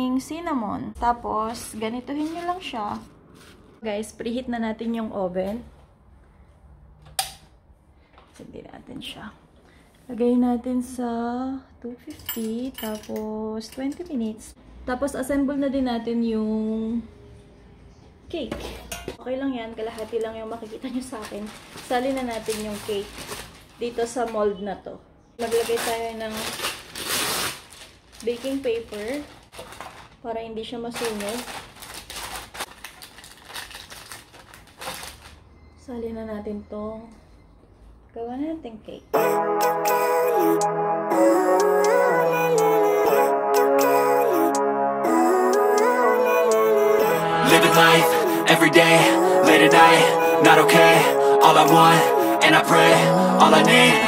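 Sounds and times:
baking paper crinkling: 1.7 - 2.8, 19.9 - 24.2, 25.4 - 35.4.

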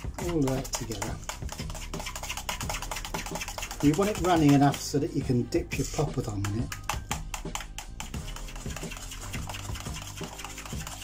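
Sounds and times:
utensil scraping metal bowl: 0.0 - 11.0.

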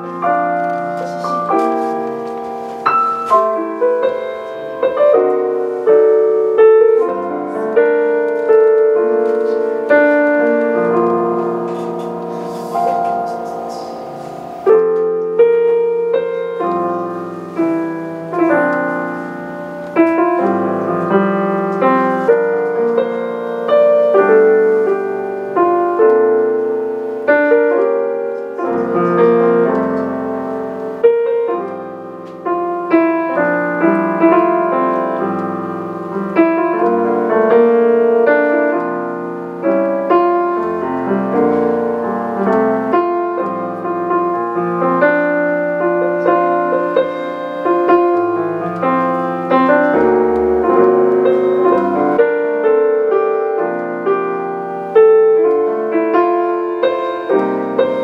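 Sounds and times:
piano playing chords: 0.0 - 58.0.

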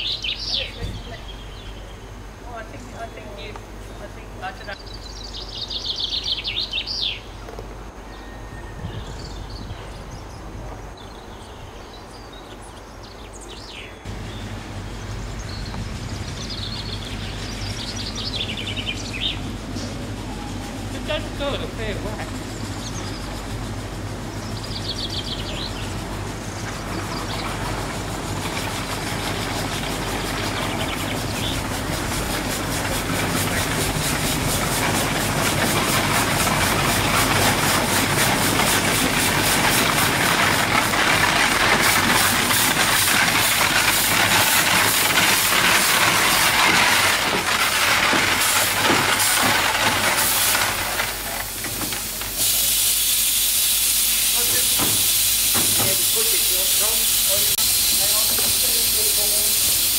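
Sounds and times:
steam engine exhaust beats: 14.1 - 59.9
steam hissing: 14.1 - 59.9.

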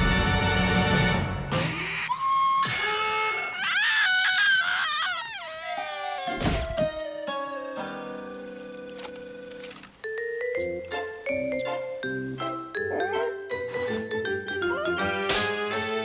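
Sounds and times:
cartoon music: 12.6 - 15.4.

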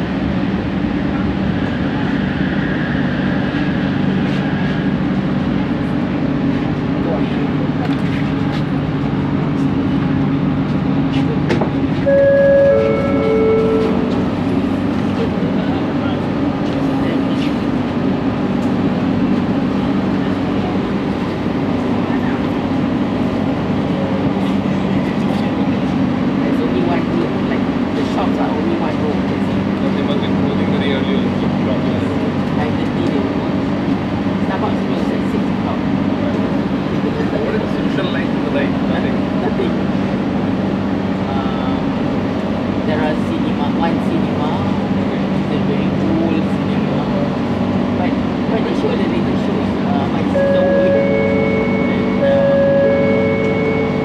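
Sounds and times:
metro car low hum: 0.0 - 54.0
electronic chime: 12.1 - 14.2, 50.4 - 54.0.

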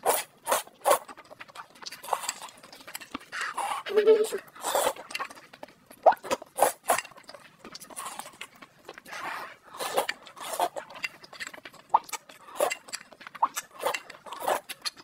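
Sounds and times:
slurping and chewing noodles: 0.0 - 15.0.

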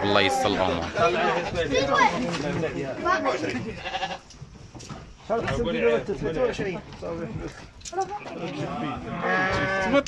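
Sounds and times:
sheep bleating: 3.6 - 4.3, 8.2 - 10.0.

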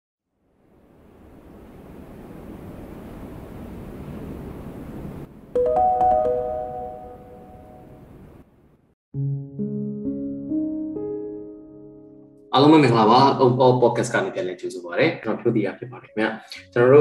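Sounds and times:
bright chime notes: 5.6 - 8.0.

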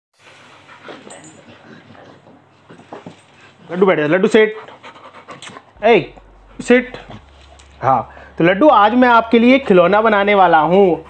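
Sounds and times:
dog rolling on stone floor: 0.3 - 3.8, 7.0 - 7.8.

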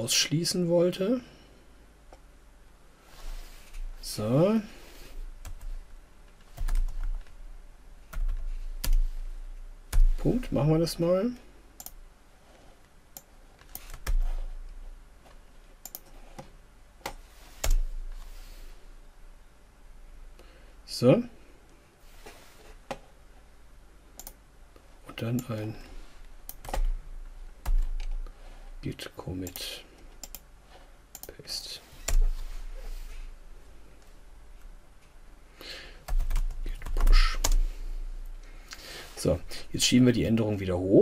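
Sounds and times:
low steady hum: 0.0 - 41.0
keyboard key presses: 6.5 - 7.3
computer keyboard typing: 6.5 - 7.4, 8.1 - 9.2, 13.2 - 14.4, 15.8 - 16.2, 26.5 - 27.0, 36.1 - 37.7.

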